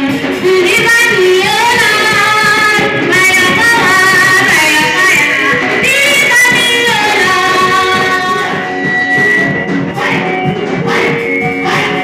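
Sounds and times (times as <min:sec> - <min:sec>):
women singing worship music: 0:00.3 - 0:09.0, 0:09.8 - 0:12.0.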